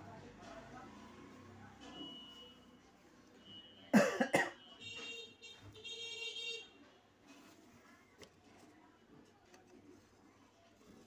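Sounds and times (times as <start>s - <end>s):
person coughing: 3.9s - 4.6s.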